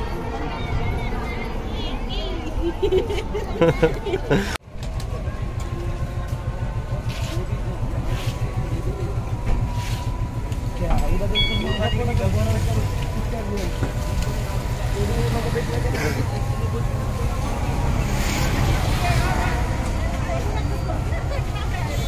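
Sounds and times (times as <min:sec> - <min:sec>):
faint voices: 0:00.0 - 0:22.0
steady low rumble: 0:02.4 - 0:11.4.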